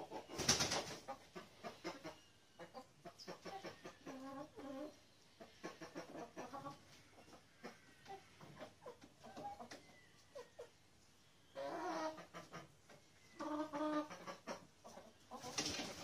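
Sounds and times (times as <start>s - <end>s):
hens clucking: 0.0s - 16.0s.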